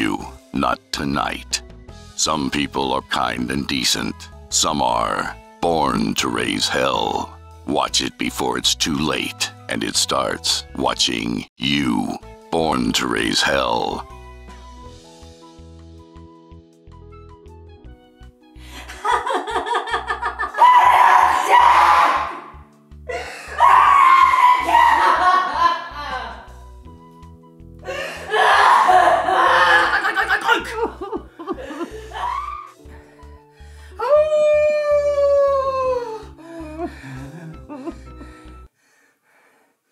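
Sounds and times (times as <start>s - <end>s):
trailer music with pulsing bass: 14.0s - 18.7s, 26.0s - 27.9s
woman laughing: 18.8s - 20.6s, 24.8s - 26.5s, 28.9s - 32.6s, 36.8s - 38.4s
wavering cries: 19.6s - 22.5s, 23.1s - 25.7s, 27.9s - 30.6s, 31.6s - 32.8s
howl-like cry: 20.5s - 22.4s, 23.5s - 25.5s, 28.2s - 30.2s, 32.1s - 32.8s, 34.0s - 36.2s.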